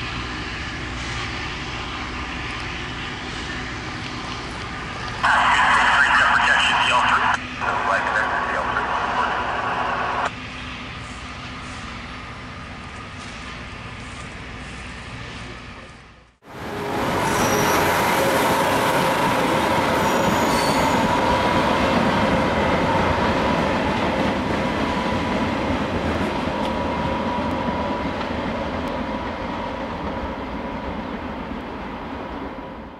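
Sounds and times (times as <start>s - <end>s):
freight train wheels rumbling: 6.7s - 32.9s.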